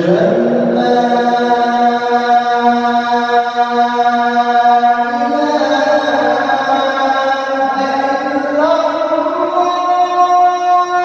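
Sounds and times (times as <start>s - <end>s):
man singing call to prayer: 0.0s - 11.0s.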